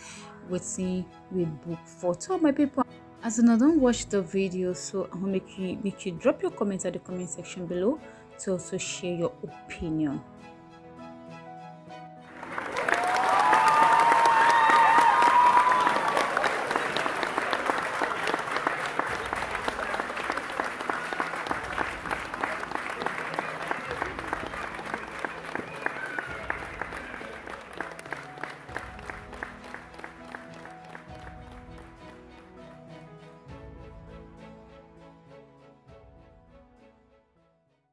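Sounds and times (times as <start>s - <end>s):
background music: 0.0s - 37.9s
crowd clapping and cheering: 12.2s - 33.0s.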